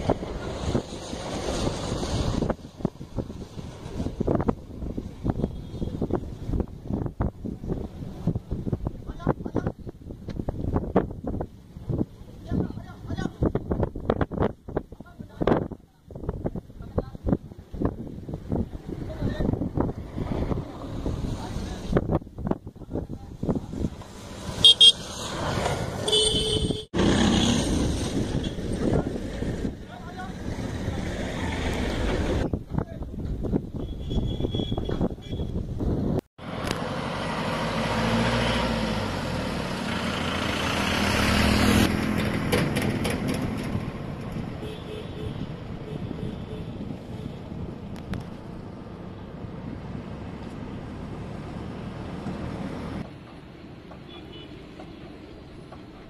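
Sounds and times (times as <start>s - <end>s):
road traffic on a bridge: 0.0s - 56.0s
wind: 0.0s - 56.0s
short horn toots: 26.0s - 26.9s.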